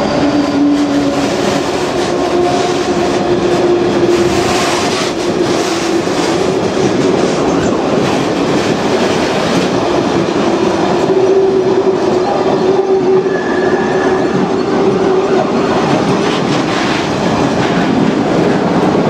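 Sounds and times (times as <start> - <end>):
train wheels clattering over rail joints: 0.8 - 12.2, 14.4 - 19.0.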